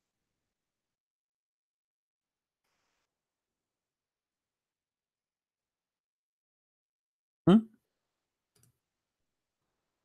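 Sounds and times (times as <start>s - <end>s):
man's short vocal sound: 7.5s - 7.7s.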